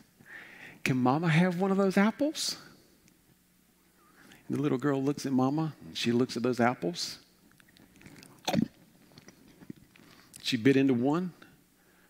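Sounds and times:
crunchy mouth biting noise: 7.5s - 10.4s
faint mouth clicks: 7.5s - 10.4s.

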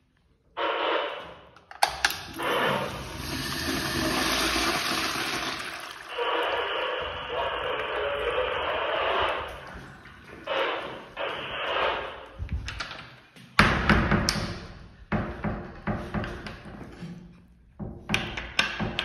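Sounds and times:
urinal flushing water: 2.0s - 10.5s.

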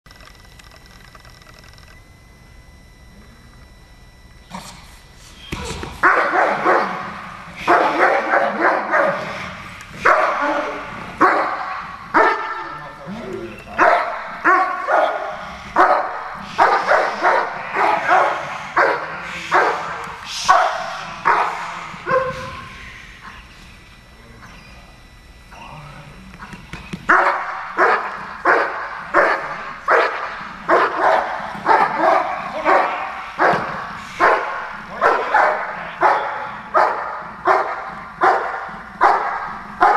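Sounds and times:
dog barking: 6.0s - 7.1s, 7.7s - 9.4s, 10.0s - 12.8s, 13.8s - 22.6s, 27.1s - 39.9s.

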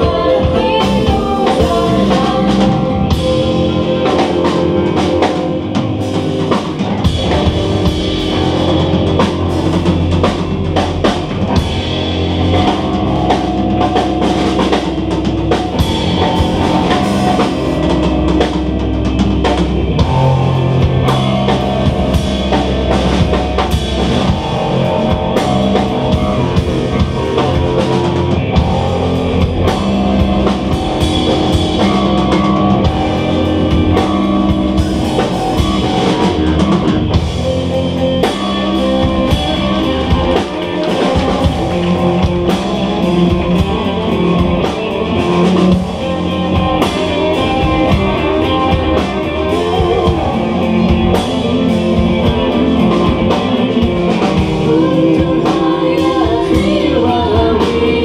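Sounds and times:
bass guitar: 0.0s - 58.0s
drum kit rock beat: 0.0s - 58.0s
electric guitar: 0.0s - 58.0s.

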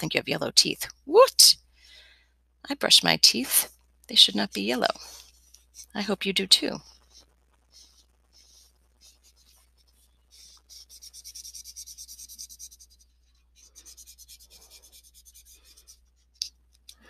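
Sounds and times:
marker scribbling on paper: 6.9s - 16.4s.

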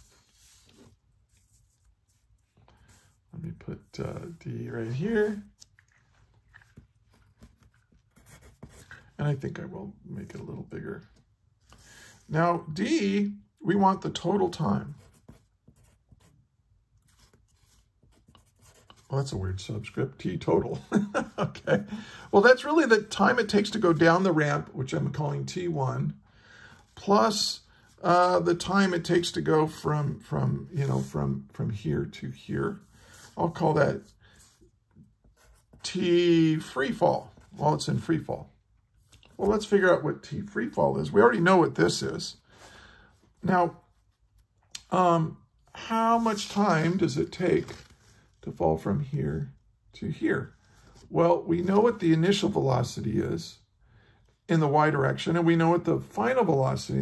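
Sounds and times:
pencil scratching on paper: 0.0s - 3.2s, 7.4s - 9.1s, 14.9s - 16.4s, 17.0s - 19.1s, 32.8s - 35.9s.

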